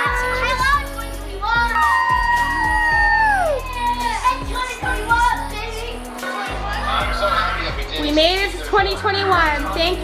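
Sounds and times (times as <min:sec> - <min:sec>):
family's excited voices: 0:00.0 - 0:09.7
television music: 0:00.0 - 0:10.0
child's high shout: 0:01.5 - 0:05.5.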